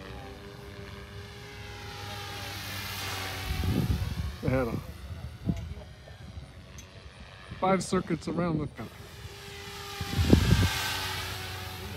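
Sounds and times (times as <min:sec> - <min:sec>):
rc helicopter motor whine: 0:00.0 - 0:11.9.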